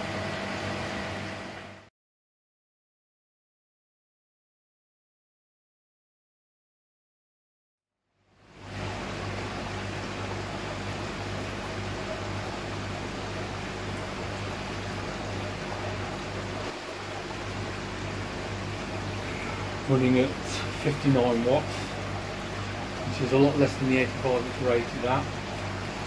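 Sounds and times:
air pump humming: 0.0s - 1.8s, 8.6s - 26.0s.

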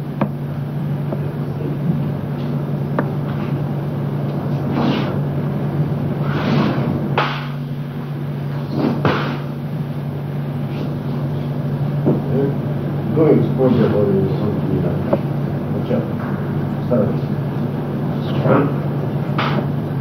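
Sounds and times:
low hum with hiss: 0.0s - 20.0s.

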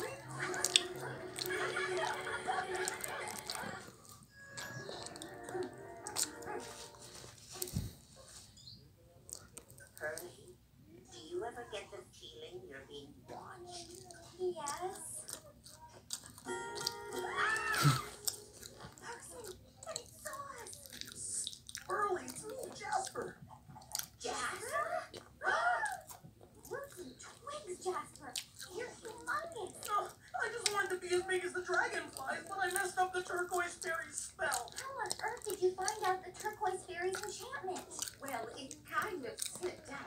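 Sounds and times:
cartoon voices from television: 0.0s - 7.0s, 9.2s - 40.0s
cartoon sound effects: 16.5s - 18.3s.

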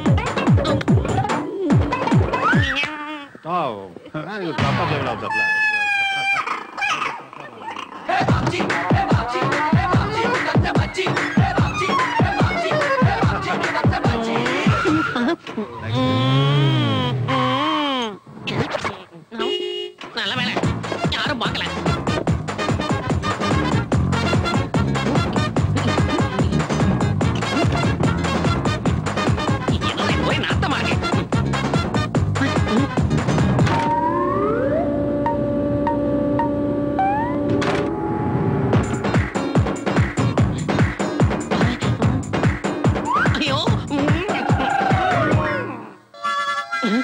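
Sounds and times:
men's drawn-out vocal cry: 8.0s - 15.2s, 44.2s - 46.1s
electronic tones sliding upward: 33.8s - 38.8s.

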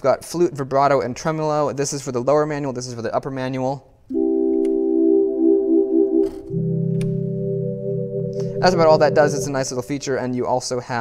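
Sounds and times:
electronic organ chords: 4.1s - 10.3s.

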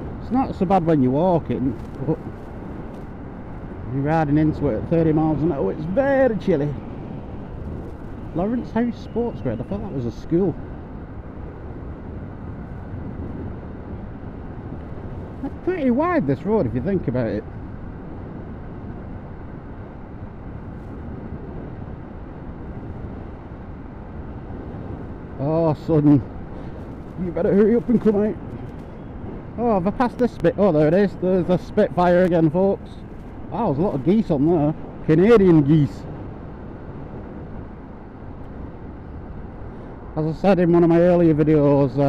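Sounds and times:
motorbike engine drone: 0.0s - 42.0s
wind and road noise: 0.0s - 42.0s.

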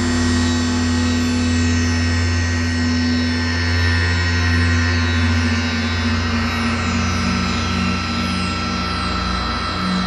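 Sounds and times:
synthesizer drone: 0.0s - 10.0s.

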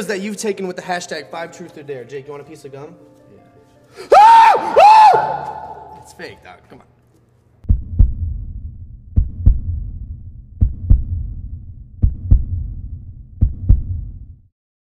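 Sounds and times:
heartbeat double thumps: 7.7s - 14.5s
low throb: 7.7s - 14.5s.

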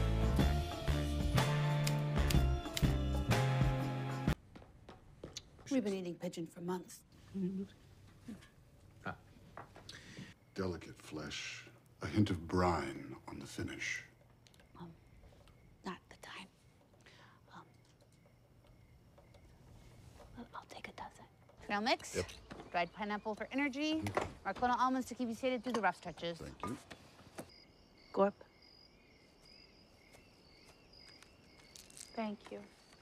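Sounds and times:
crickets chirping: 8.3s - 33.0s
breathing: 9.9s - 10.4s, 17.0s - 17.5s.

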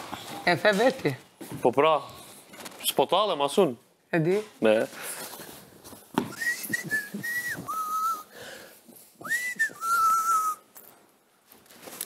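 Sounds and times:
person whistling two-note phrase: 6.4s - 8.2s.

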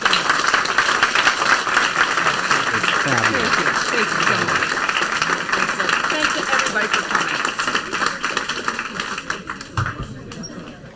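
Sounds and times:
audience applause: 0.0s - 10.9s.

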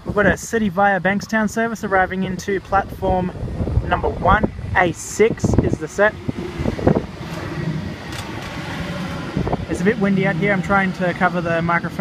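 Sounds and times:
wind buffeting microphone: 0.0s - 12.0s
electric train humming past: 1.8s - 12.0s.

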